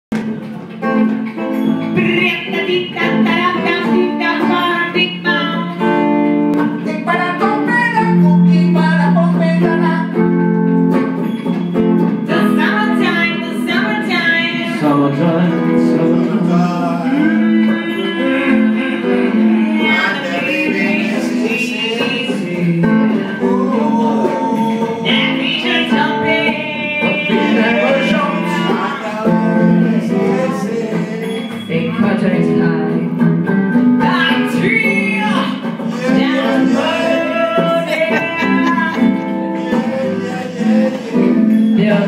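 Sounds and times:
acoustic guitar playing: 0:00.1 - 0:42.0
woman singing into a microphone: 0:01.9 - 0:10.2, 0:12.2 - 0:14.9, 0:17.0 - 0:33.3, 0:34.0 - 0:42.0.

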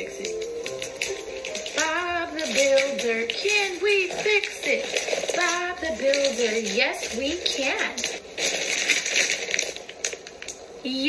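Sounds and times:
wrapping paper crinkling: 0:00.0 - 0:11.0.

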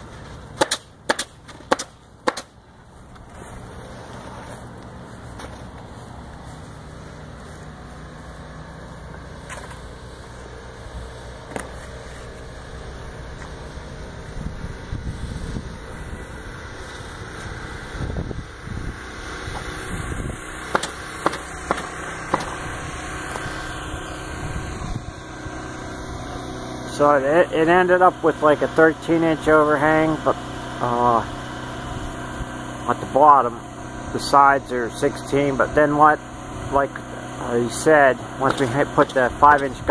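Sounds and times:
motor humming: 0:00.0 - 0:39.9.

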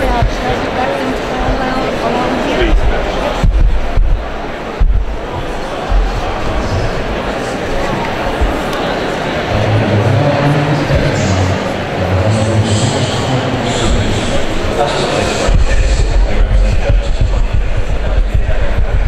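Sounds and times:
chatter of many voices: 0:00.0 - 0:19.0
loud low rumble: 0:02.6 - 0:07.2
dull thumps: 0:02.7 - 0:07.1.

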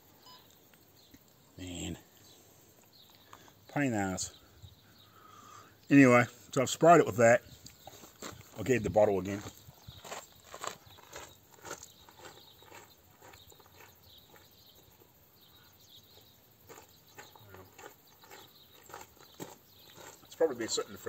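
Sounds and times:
footsteps on gravel: 0:07.7 - 0:15.0, 0:16.1 - 0:21.0.

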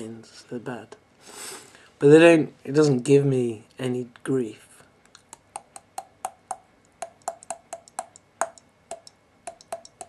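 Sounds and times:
sharp ringing clicks: 0:05.6 - 0:10.0.

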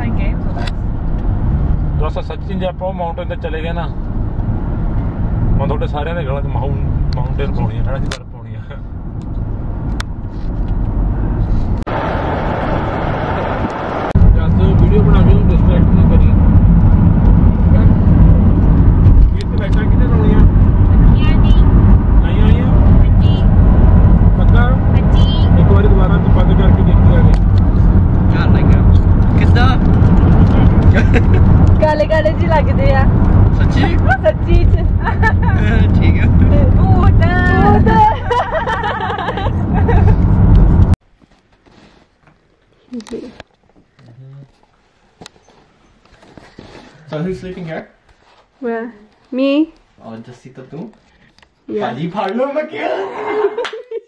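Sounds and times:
car cabin road rumble: 0:00.0 - 0:41.2
indistinct voices: 0:24.3 - 0:27.4, 0:31.8 - 0:38.5.

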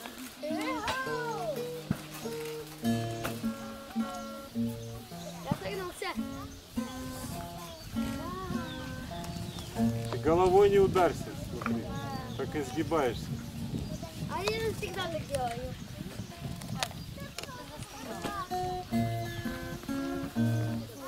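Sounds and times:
children calling out: 0:00.0 - 0:09.3
acoustic guitar notes: 0:00.0 - 0:13.6, 0:18.0 - 0:21.0.

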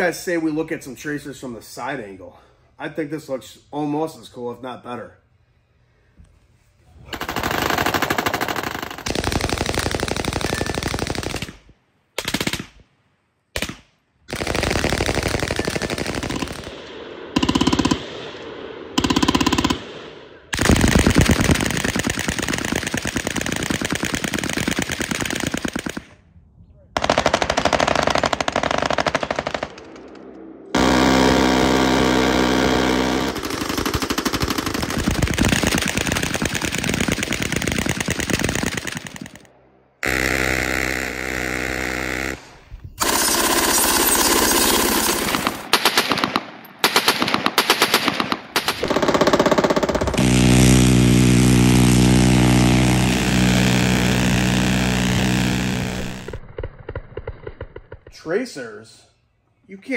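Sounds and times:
machine guns firing bursts: 0:07.2 - 0:12.7, 0:13.6 - 0:18.3, 0:19.0 - 0:26.1, 0:27.0 - 0:30.1, 0:30.8 - 0:58.0.

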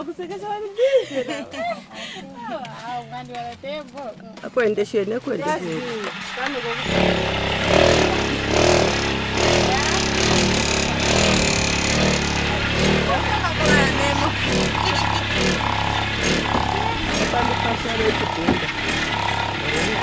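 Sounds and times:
voices: 0:00.0 - 0:20.0
motor-driven vibrating table: 0:05.7 - 0:20.0.

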